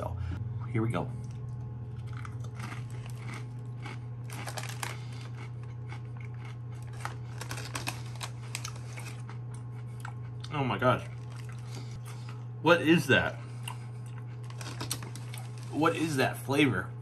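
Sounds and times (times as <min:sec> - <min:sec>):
steady low hum: 0:00.0 - 0:17.0
potato chip crunching: 0:01.2 - 0:12.4, 0:13.6 - 0:16.3.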